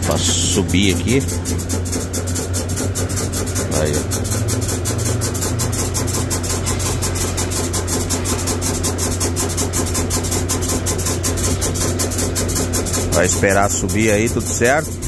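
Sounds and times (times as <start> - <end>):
diesel truck engine idling: 0.0 - 15.0
even ticking: 0.0 - 15.0.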